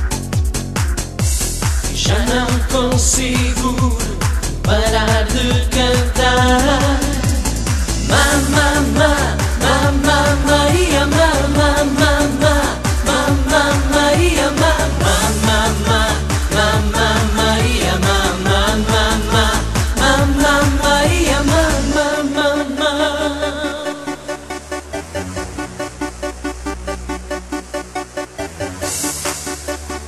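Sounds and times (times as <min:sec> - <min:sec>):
dance-pop song: 0:00.0 - 0:30.0.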